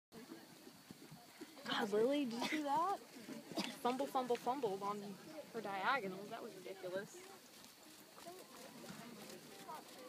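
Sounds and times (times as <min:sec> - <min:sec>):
background murmur: 0:00.2 - 0:10.0
hoofbeats trotting on sand: 0:06.6 - 0:10.0.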